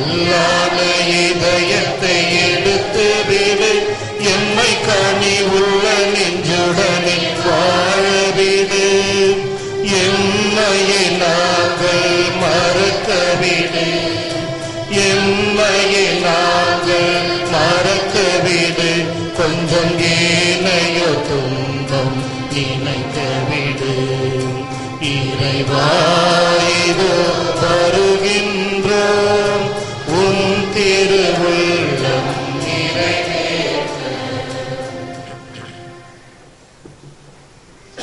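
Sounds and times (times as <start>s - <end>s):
voices singing a slow hymn: 0.0s - 36.2s
low steady accompaniment: 0.0s - 38.0s.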